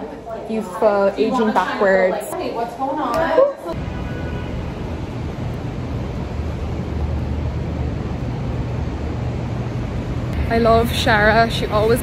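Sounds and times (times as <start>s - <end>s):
low traffic rumble: 3.7s - 12.0s.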